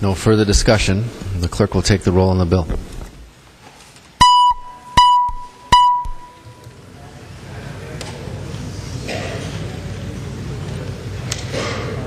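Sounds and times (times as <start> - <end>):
loud electronic beeps: 4.2 - 6.4.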